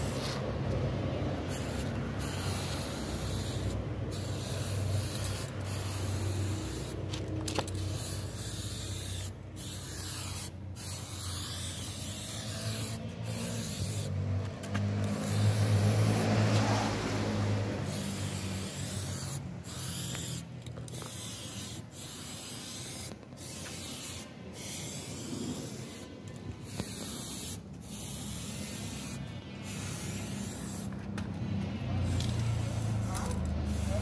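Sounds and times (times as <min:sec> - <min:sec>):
aerosol spray can hissing: 0:01.4 - 0:14.2, 0:15.0 - 0:31.0, 0:32.1 - 0:34.0.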